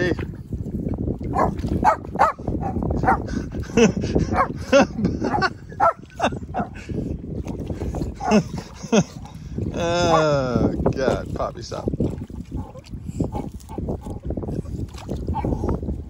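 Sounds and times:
dog barking and yelping: 1.3s - 3.3s, 4.3s - 4.6s, 5.2s - 6.8s.

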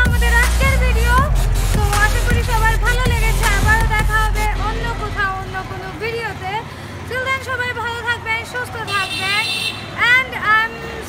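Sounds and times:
faint street traffic: 0.0s - 11.0s
woman speaking: 0.0s - 11.0s.

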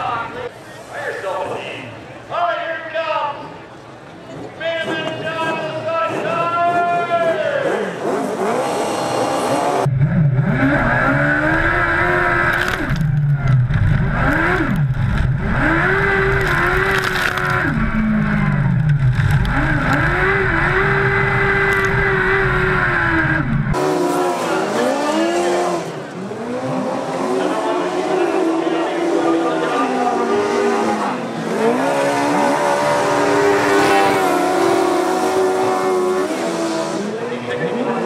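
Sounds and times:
racing engine rumbling: 3.4s - 38.0s
racing engines passing: 4.3s - 38.0s.

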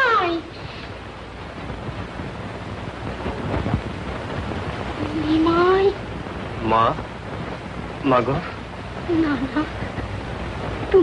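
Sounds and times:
rumbling hissing noise: 0.0s - 11.0s.

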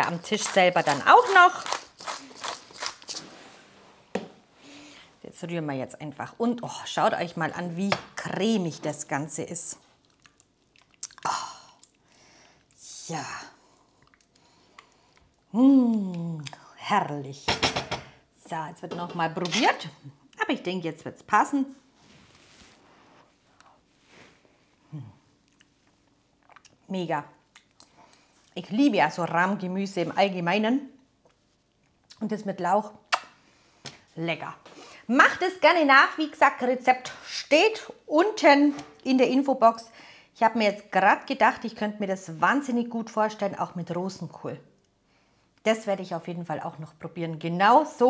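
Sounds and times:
spice mill grinding: 0.0s - 3.2s
faint soft rustle: 21.7s - 24.9s.

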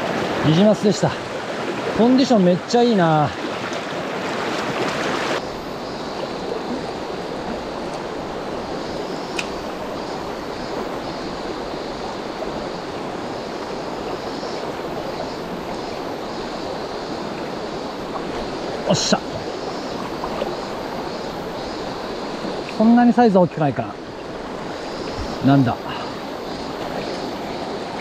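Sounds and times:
stream rushing over rocks: 0.0s - 28.0s
sharp click: 9.3s - 9.6s.

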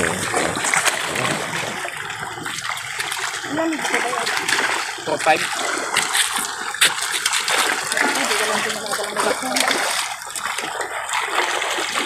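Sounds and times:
fish splashing in water: 0.0s - 12.0s.

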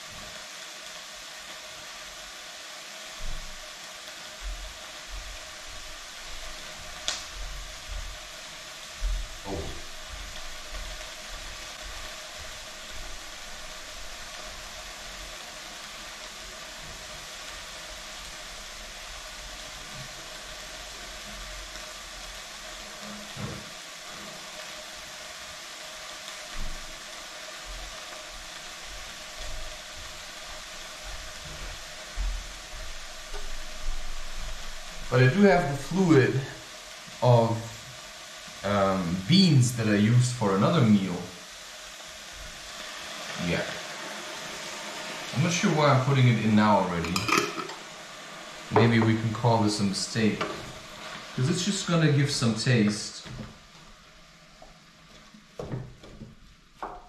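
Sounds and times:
pot hissing on hot plate: 0.0s - 57.0s.

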